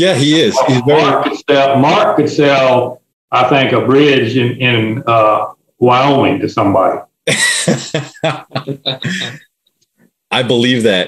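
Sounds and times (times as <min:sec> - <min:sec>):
breathy laughter: 0:07.3 - 0:09.4.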